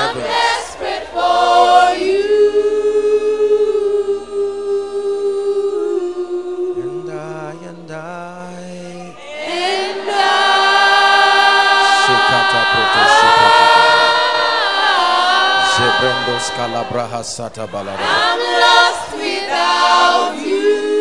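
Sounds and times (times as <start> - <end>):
congregation singing a cappella: 0.0 - 21.0.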